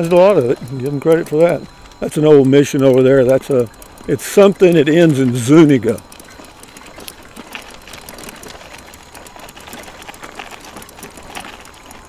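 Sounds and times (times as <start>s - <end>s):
faint high whine: 0.0s - 12.0s
rapid irregular rattling clicks: 0.0s - 12.0s
tyre and drivetrain noise: 0.0s - 12.0s.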